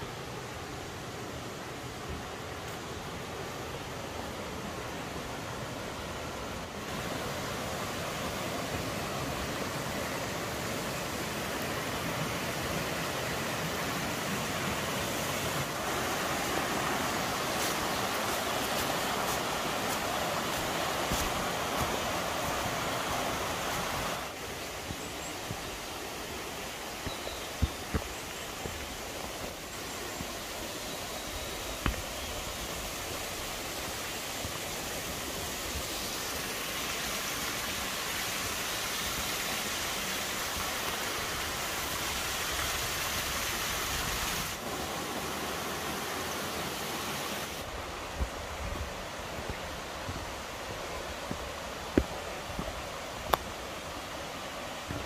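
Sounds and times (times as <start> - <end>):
stream rushing over cascades: 0.0 - 55.0.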